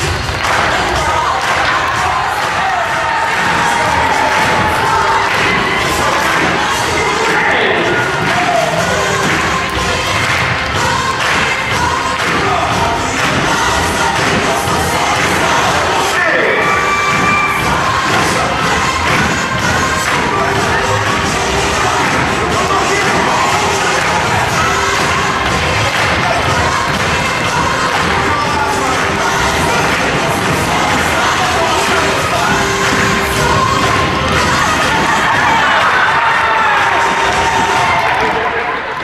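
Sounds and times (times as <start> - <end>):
children cheering and shouting: 0.0 - 10.2, 10.8 - 39.0
loud music: 0.0 - 39.0.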